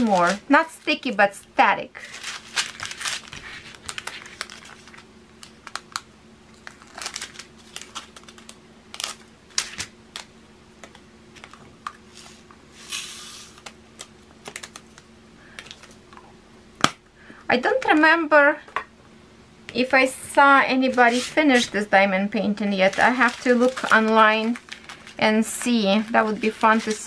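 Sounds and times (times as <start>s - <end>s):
plastic rustle: 2.0s - 9.9s, 22.6s - 27.0s
plastic bags clicking and crinkling: 2.0s - 12.0s, 22.7s - 27.0s.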